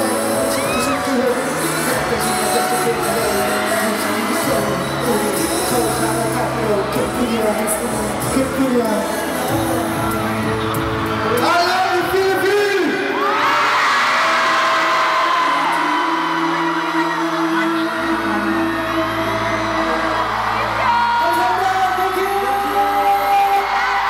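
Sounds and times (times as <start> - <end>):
crowd screaming and whooping: 0.0 - 24.0
slow pop ballad: 0.0 - 24.0.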